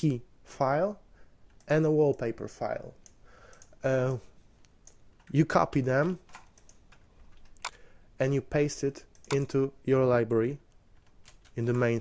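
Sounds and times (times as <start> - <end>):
computer keyboard and mouse clicks: 3.0 - 3.8, 4.6 - 5.4, 6.0 - 7.8, 9.0 - 9.6, 10.7 - 12.0.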